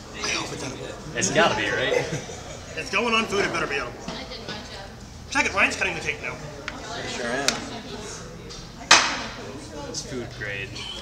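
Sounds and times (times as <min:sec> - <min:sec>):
background chatter: 0:00.0 - 0:11.0.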